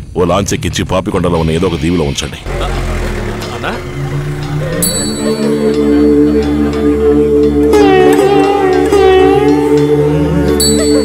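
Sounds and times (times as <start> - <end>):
man talking and laughing: 2.5 - 3.9
sustained held tones: 2.5 - 11.0.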